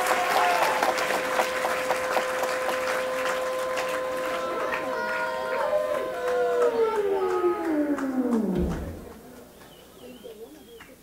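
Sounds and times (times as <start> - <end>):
synthesizer chord sliding down: 2.0 - 9.5
brief low rumble: 4.4 - 9.5.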